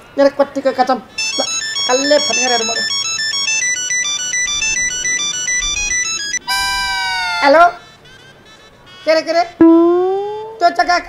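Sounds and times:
mobile phone ringtone: 0:01.2 - 0:10.1.

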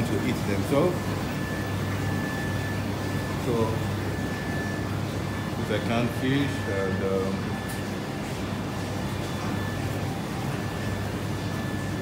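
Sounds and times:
low hum with airy noise: 0:00.0 - 0:12.0.

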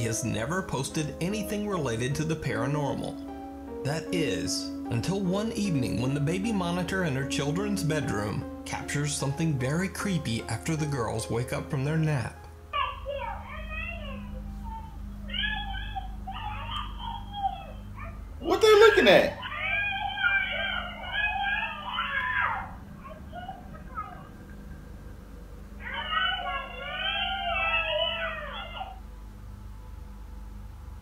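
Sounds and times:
baby monitor low hum: 0:00.0 - 0:31.0
toddlers yelling high-pitched: 0:12.8 - 0:24.3, 0:25.8 - 0:29.0.

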